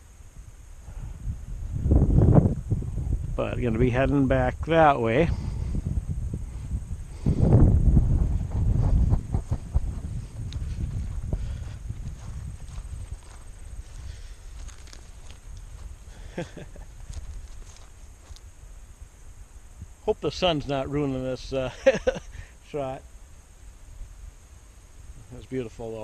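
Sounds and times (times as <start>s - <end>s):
wind rumbling on microphone: 0.0s - 23.0s
footsteps on grass: 7.2s - 18.5s.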